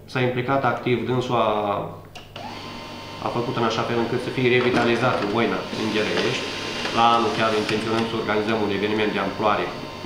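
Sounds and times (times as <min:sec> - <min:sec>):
man speaking: 0:03.2 - 0:09.8.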